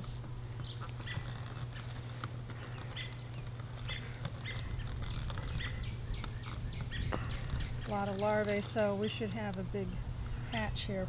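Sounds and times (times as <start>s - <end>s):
bee colony humming: 0.0s - 11.0s.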